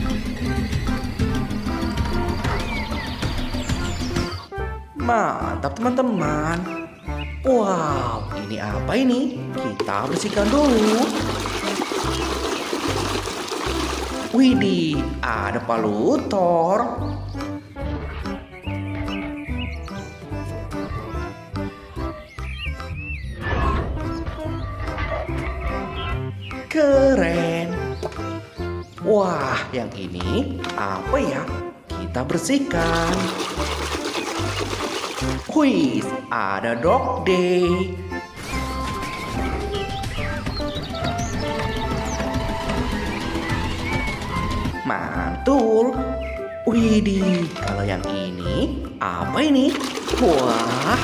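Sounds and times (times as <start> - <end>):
background music with bass line: 0.0 - 51.0
water splashing in a tub: 9.8 - 14.5, 32.7 - 35.6, 49.4 - 51.0
hand scrubbing a toy underwater: 10.0 - 14.4, 32.7 - 35.5, 49.7 - 51.0.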